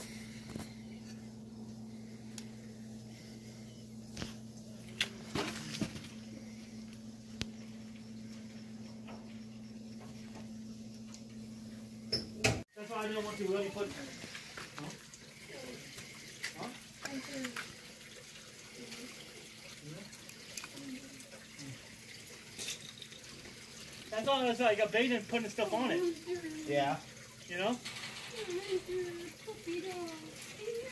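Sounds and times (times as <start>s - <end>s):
steady low hum: 0.0s - 14.5s.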